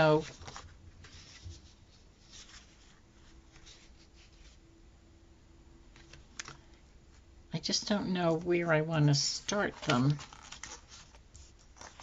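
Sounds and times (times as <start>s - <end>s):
paper sticker sheet rustling: 0.0s - 4.6s, 9.3s - 12.0s
faint room hum: 0.0s - 12.0s.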